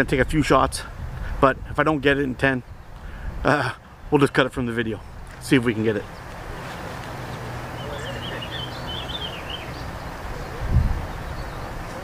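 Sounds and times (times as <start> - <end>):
wind on microphone: 0.0 - 3.5, 6.1 - 12.0
small bird chirping: 7.7 - 11.9.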